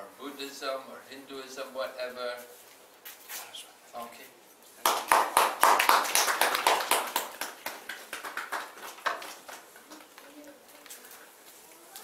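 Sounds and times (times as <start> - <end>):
small group clapping: 4.8 - 10.4.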